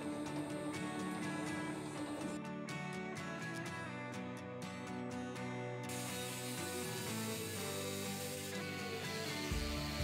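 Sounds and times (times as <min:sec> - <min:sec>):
guitar background music: 0:00.0 - 0:10.0
angle grinder grinding steel: 0:05.9 - 0:10.0.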